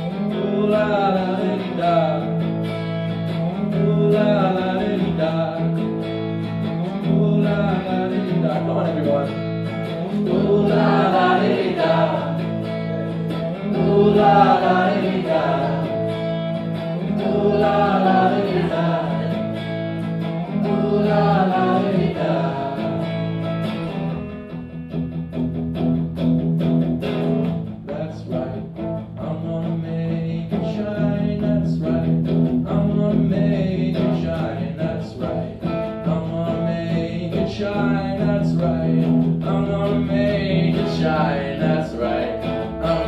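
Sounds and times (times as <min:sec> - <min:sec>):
man singing: 0:00.0 - 0:02.5, 0:03.5 - 0:06.0, 0:06.8 - 0:16.1, 0:20.5 - 0:23.1, 0:27.8 - 0:43.0
electric guitar playing: 0:00.0 - 0:43.0.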